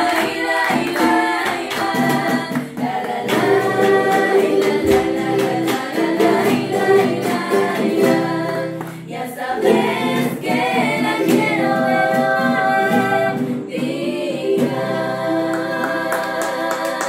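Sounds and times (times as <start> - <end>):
strummed charango: 0.0 - 17.0
woman singing folk song: 0.0 - 17.0.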